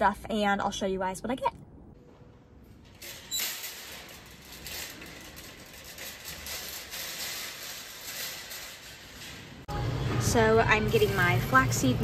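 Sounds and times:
shopping cart rattling: 2.6 - 9.7
shopping cart clank: 2.7 - 11.9.

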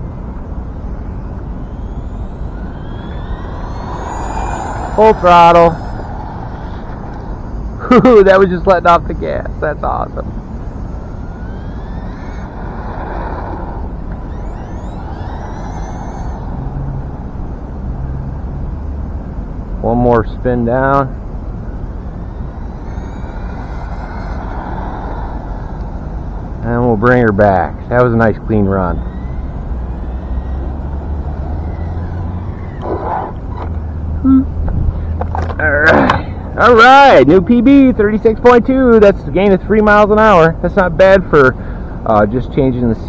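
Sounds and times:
low rumble: 0.0 - 7.9
high whine of electric motor: 0.0 - 40.3.

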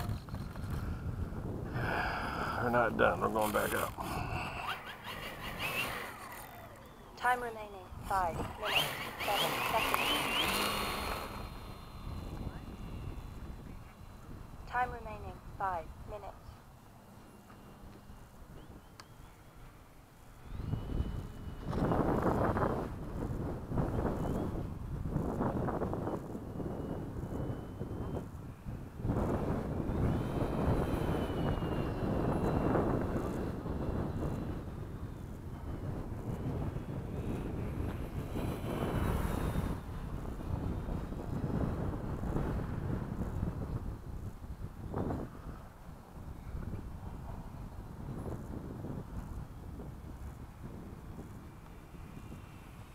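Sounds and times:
distant model airplane motor whine: 0.0 - 52.9
wind buffeting microphone: 0.0 - 52.9.

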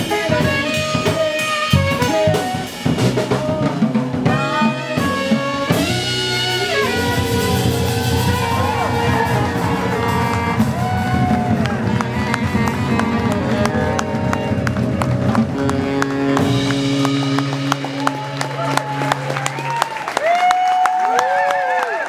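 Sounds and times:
double bass: 0.0 - 20.2
alto saxophone: 0.0 - 20.4
drums: 0.0 - 21.5
piano: 0.0 - 21.8.

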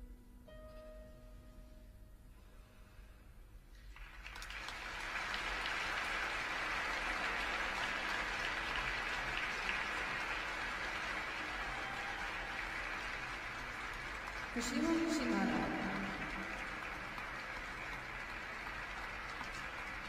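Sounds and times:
audience applauding: 3.8 - 20.0.

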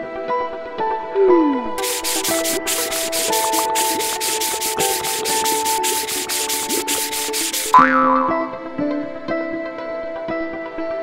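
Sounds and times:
cartoon sponges scrubbing: 1.8 - 7.8.

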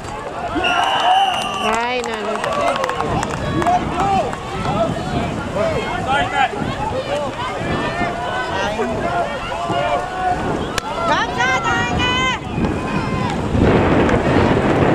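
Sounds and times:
crowd shouting: 0.2 - 14.7
whistle blown: 0.6 - 2.0.

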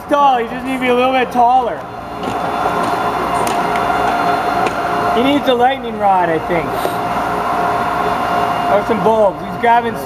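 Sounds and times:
tesla coil buzzing: 0.0 - 10.0.

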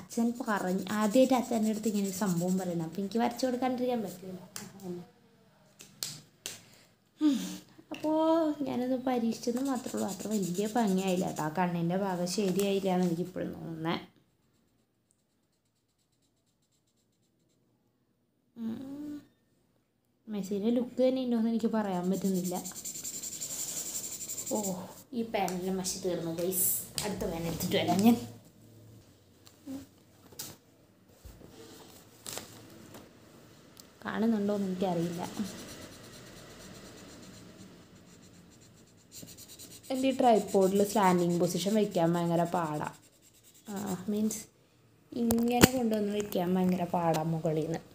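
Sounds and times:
marker pen scratching paper: 0.0 - 4.2, 9.4 - 11.6, 14.1 - 17.6, 21.8 - 25.0, 34.6 - 44.4.

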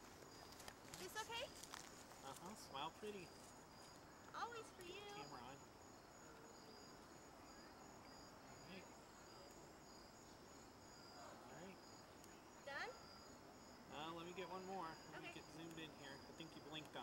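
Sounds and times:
crickets chirping: 0.0 - 17.0.

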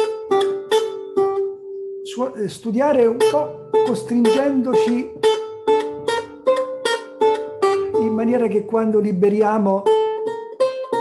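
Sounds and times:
lute plucked notes: 0.0 - 11.0.

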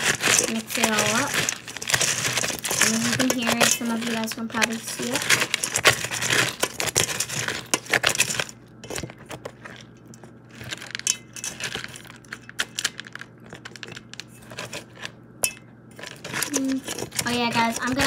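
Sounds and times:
spoon scraping a bowl: 0.0 - 12.8, 14.2 - 18.0.

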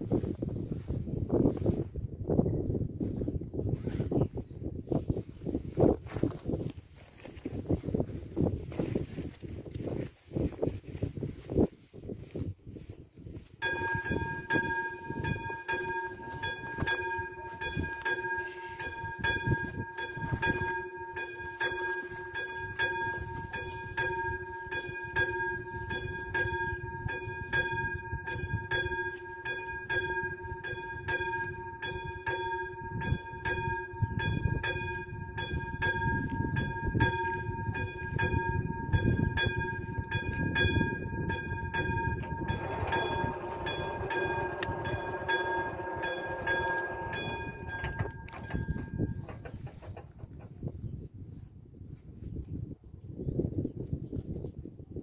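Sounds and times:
level crossing warning bell: 13.6 - 50.0
barrier motor hum: 13.8 - 50.0.

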